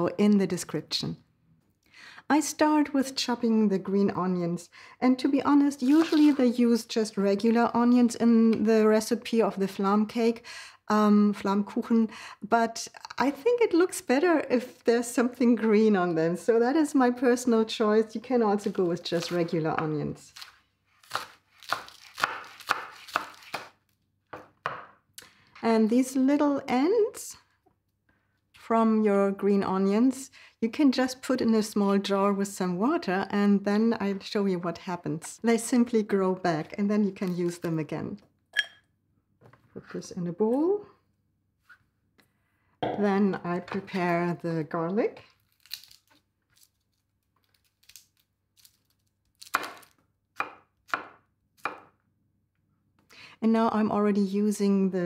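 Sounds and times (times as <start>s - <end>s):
knife chopping on wooden board: 21.1s - 23.7s, 24.3s - 25.0s, 50.4s - 51.9s.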